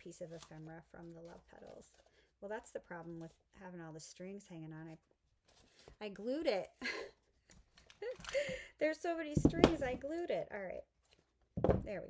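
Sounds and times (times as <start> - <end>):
woman laughing: 6.8 - 7.3, 7.9 - 8.7.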